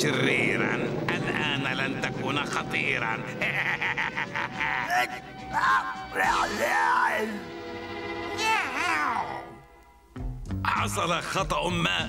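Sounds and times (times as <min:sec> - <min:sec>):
high quavering cackle of laughter: 0:03.3 - 0:05.3.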